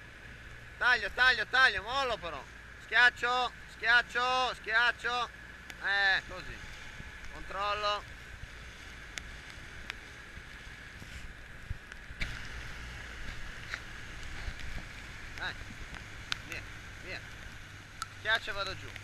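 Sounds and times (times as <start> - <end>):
outboard motor hum: 0.0 - 19.0.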